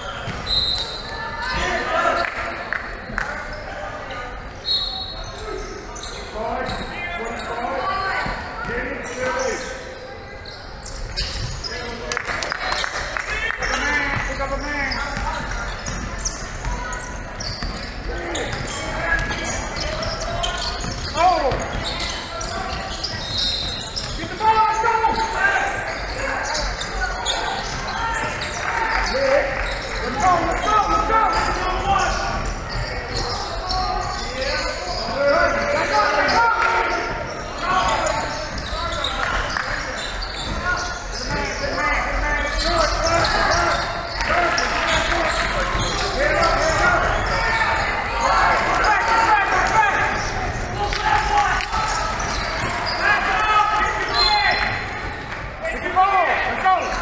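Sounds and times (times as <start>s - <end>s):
players and spectators calling: 0.0s - 57.0s.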